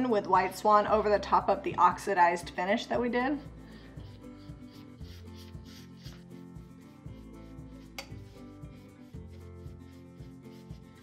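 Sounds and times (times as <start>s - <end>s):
quiet background music: 0.0s - 11.0s
paintbrush rubbing on metal: 2.1s - 11.0s.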